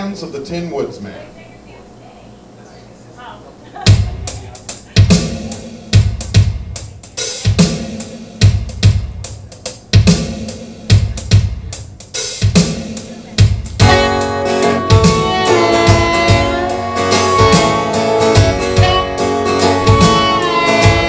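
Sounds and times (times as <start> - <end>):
drum machine rock beat: 3.8 - 21.0.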